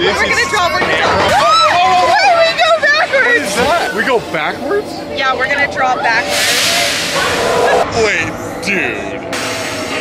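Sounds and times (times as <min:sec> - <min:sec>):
roller coaster on track: 0:00.0 - 0:10.0.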